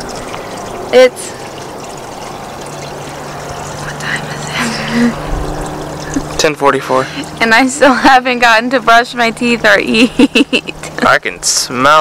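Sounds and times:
low steady hum: 0:00.0 - 0:12.0
running water trickling: 0:00.0 - 0:12.0.

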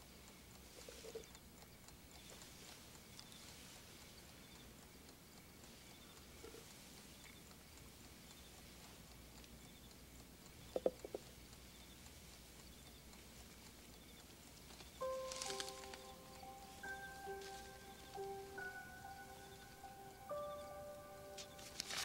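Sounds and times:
clock ticking: 0:00.0 - 0:22.0
soft handling sounds: 0:14.7 - 0:18.4, 0:21.4 - 0:22.0.

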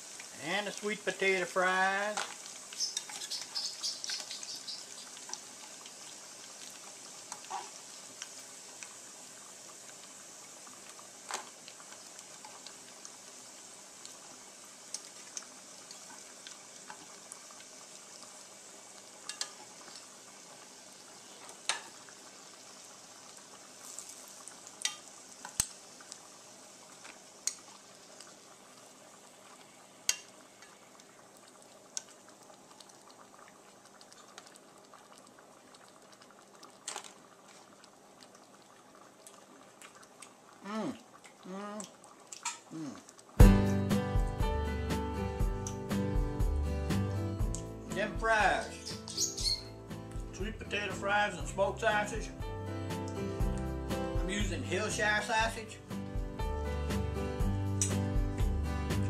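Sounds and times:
fries sizzling in oil: 0:00.0 - 0:59.0
metal tongs clicking on pot: 0:19.3 - 0:19.6, 0:24.8 - 0:25.0.

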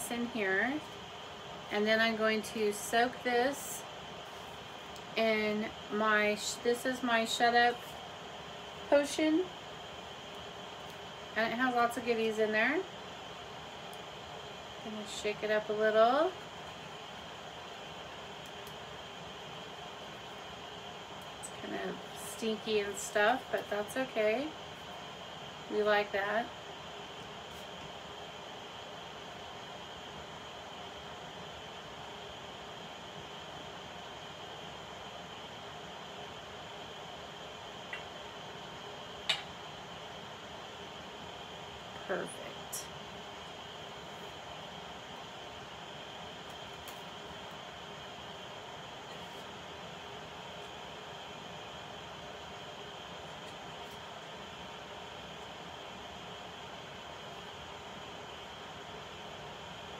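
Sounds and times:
low room hiss: 0:00.0 - 0:59.9.

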